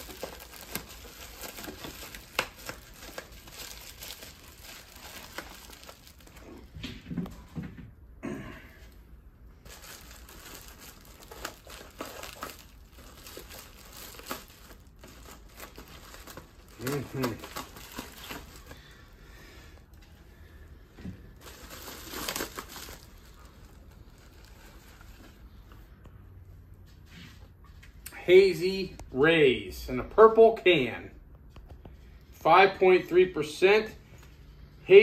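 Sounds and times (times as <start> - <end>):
foil bubble bag crinkling: 0.0 - 6.7, 9.6 - 19.1, 21.3 - 25.4.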